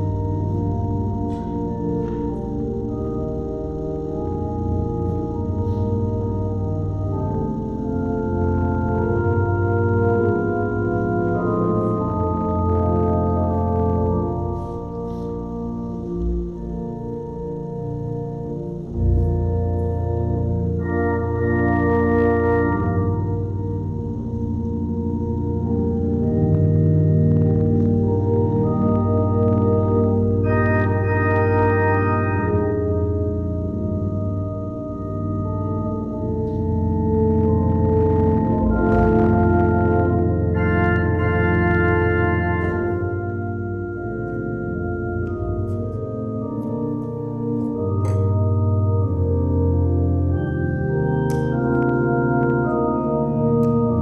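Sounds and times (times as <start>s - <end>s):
deep organ bass note: 0.0s - 54.0s
organ playing sustained chords: 0.0s - 54.0s.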